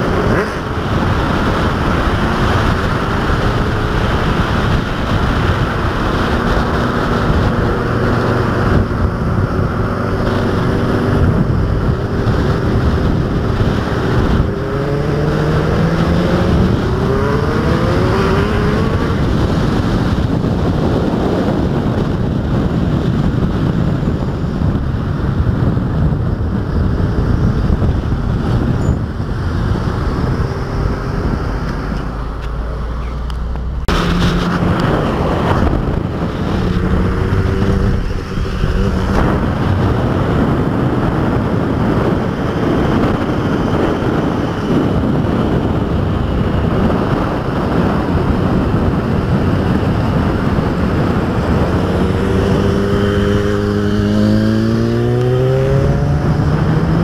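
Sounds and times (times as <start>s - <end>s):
road and wind rush: 0.0s - 57.0s
vehicle engines revving: 0.0s - 57.0s.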